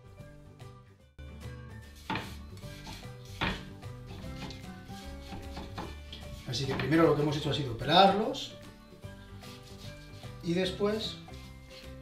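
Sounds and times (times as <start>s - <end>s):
quiet background music: 0.0s - 12.0s
knife cutting on wooden board: 1.9s - 6.9s, 9.4s - 10.4s.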